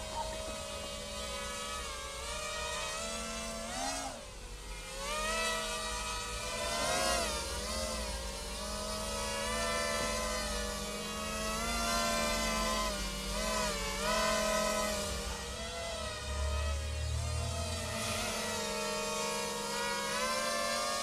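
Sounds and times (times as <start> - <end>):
quadcopter motors whining: 0.0 - 21.0.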